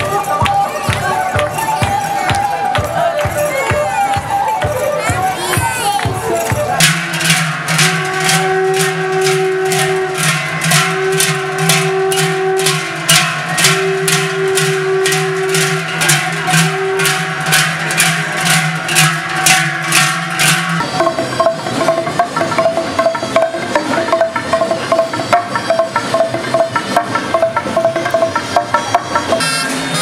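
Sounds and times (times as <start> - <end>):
wooden planks beaten with sticks: 0.0 - 29.4
large cowbells clanging: 0.0 - 30.0.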